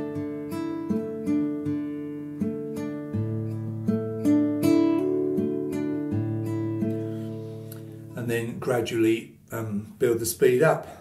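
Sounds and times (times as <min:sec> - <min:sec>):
classical guitar fingerpicked: 0:00.0 - 0:10.9.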